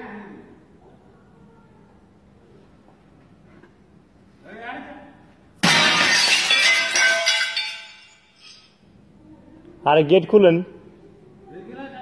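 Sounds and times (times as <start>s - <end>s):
loud ringing crash: 5.6s - 8.8s.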